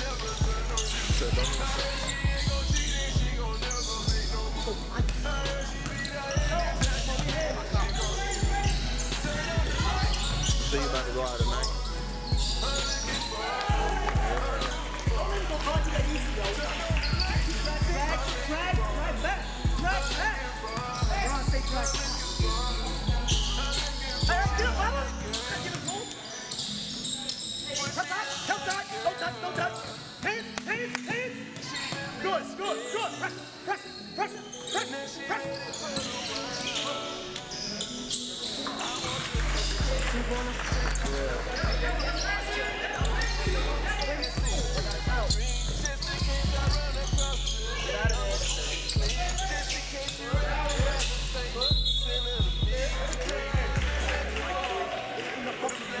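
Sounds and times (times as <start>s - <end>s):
music with heavy bass beat: 0.0s - 25.3s, 39.4s - 42.1s, 43.0s - 54.6s
voices: 0.0s - 56.0s.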